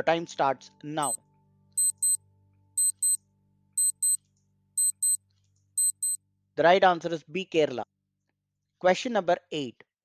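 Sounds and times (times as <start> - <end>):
clock ticking: 1.8 - 2.2, 2.8 - 3.2, 3.8 - 4.2, 4.8 - 5.2.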